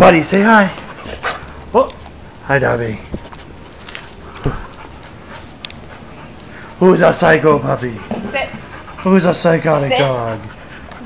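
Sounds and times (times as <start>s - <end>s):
dog thump: 4.4s - 4.9s.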